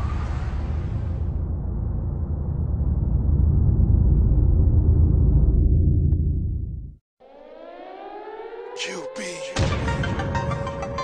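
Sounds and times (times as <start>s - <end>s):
siren wail rising in pitch: 7.2s - 9.6s.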